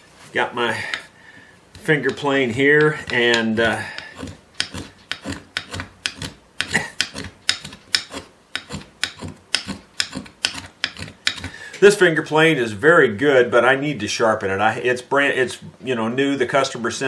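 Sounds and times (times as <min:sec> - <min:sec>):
hand plane scraping wood: 0:01.8 - 0:11.6.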